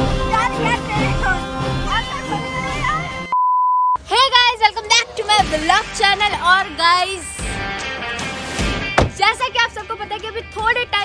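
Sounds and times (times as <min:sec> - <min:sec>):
woman talking: 0:09.1 - 0:11.0.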